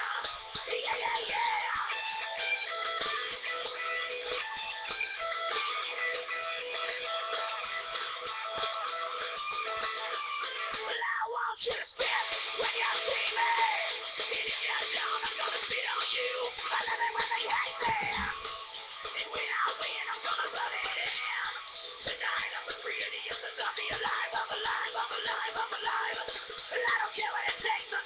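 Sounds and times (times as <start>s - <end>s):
rock music with guitar: 0.0s - 11.0s, 11.9s - 28.0s.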